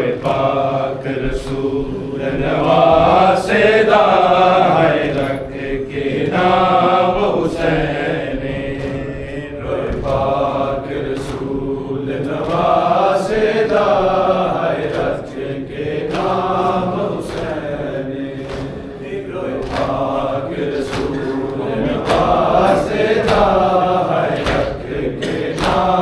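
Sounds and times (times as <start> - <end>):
men chanting in unison: 0.0 - 26.0.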